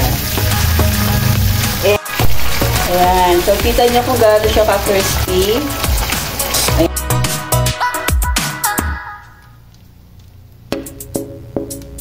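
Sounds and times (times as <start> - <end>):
fish sizzling in hot oil: 0.0 - 6.9
background music: 0.0 - 9.6, 10.7 - 12.0.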